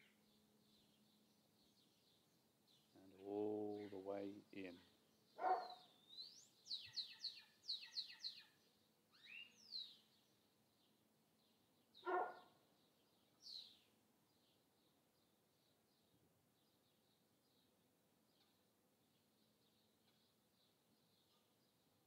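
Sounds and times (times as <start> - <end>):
bird chirping: 0.0 - 22.0
dog barking: 5.4 - 5.9, 12.0 - 12.5.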